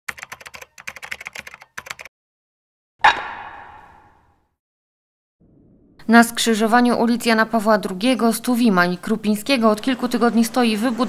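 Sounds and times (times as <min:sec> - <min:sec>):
rapid typing on keyboard: 0:00.1 - 0:02.1.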